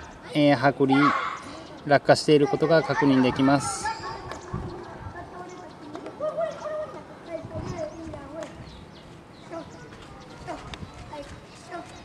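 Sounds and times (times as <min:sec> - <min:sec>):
faint background talking: 0:00.0 - 0:12.0.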